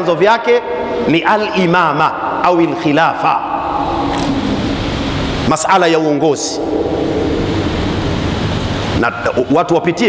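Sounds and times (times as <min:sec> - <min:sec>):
faint low hum: 0:00.5 - 0:09.9
steady rushing noise: 0:00.6 - 0:10.0.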